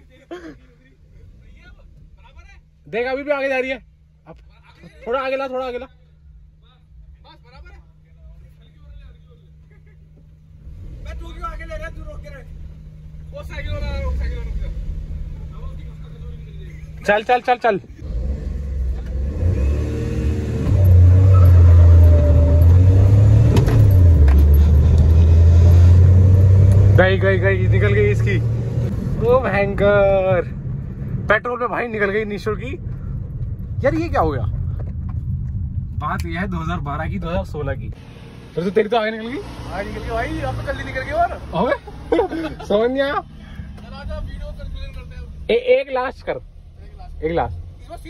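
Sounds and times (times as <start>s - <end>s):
car engine accelerating hard: 10.6s - 17.2s, 18.0s - 37.1s, 38.0s - 48.0s.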